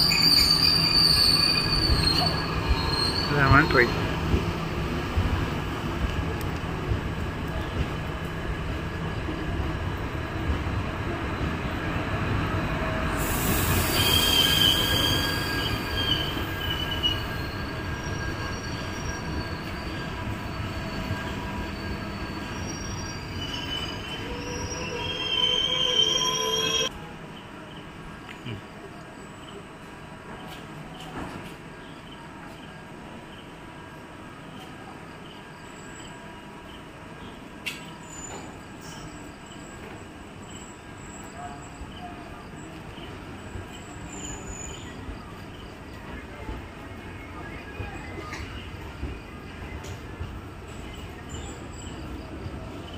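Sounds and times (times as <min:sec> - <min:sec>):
metallic squealing of train wheels: 0:00.0 - 0:04.1, 0:13.1 - 0:26.9, 0:37.7 - 0:42.9, 0:43.7 - 0:50.0
train coaches rolling past: 0:00.0 - 0:52.9.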